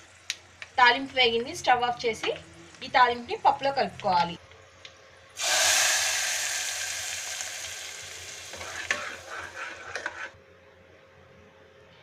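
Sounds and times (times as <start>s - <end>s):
hot oil sizzling: 5.4s - 9.8s.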